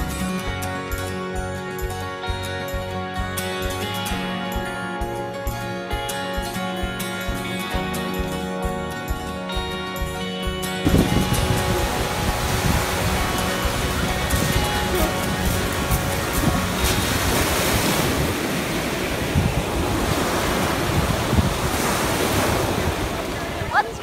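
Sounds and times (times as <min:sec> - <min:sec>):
wind buffeting microphone: 0:10.8 - 0:24.0
waves breaking on pebble beach: 0:10.9 - 0:24.0.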